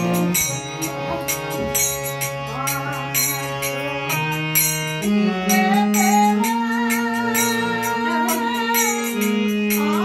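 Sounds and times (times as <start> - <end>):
hand percussion: 0.0 - 10.0
harmonium notes: 0.0 - 10.0
person singing: 2.3 - 10.0.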